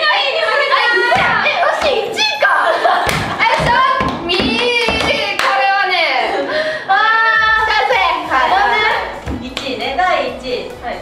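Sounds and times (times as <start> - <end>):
women laughing loudly: 2.6 - 3.6
hand clap: 3.0 - 5.6.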